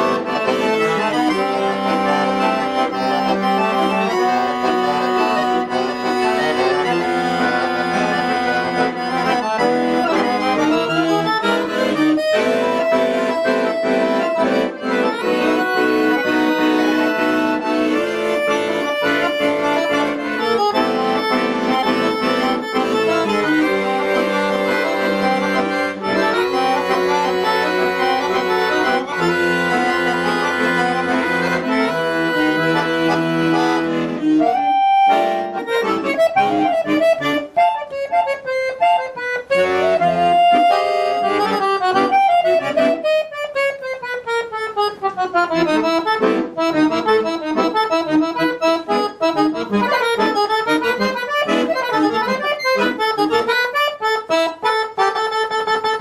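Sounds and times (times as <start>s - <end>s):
piano accordion playing: 0.0s - 56.0s.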